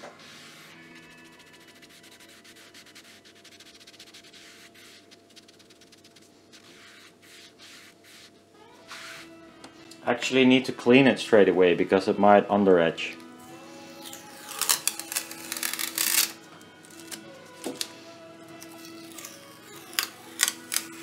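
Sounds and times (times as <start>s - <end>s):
cotton pad scrubbing on foil: 0.2s - 9.3s.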